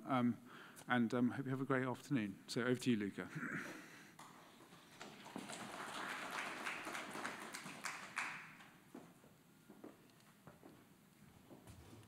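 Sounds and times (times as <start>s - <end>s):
footsteps on a stage floor: 8.6s - 12.0s.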